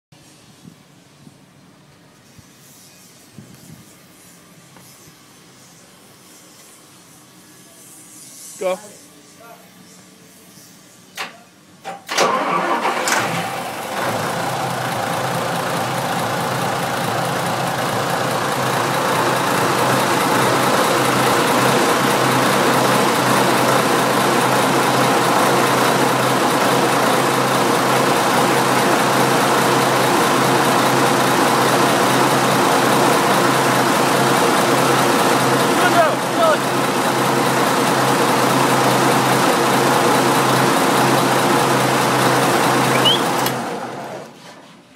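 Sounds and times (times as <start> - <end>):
marine diesel engine starting and idling: 11.9 - 44.4.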